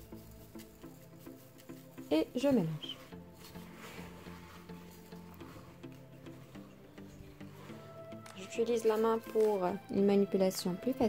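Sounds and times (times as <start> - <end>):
wooden spoon stirring dough: 0.0 - 10.2
soft background music: 0.0 - 11.0.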